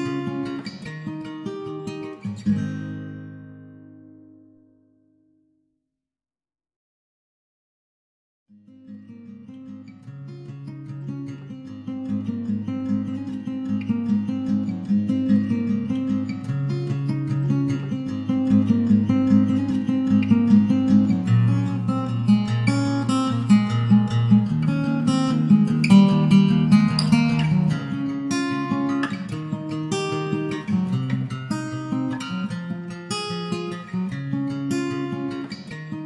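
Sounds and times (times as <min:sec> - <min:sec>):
strummed acoustic guitar: 0:00.0 - 0:04.9, 0:08.6 - 0:36.0.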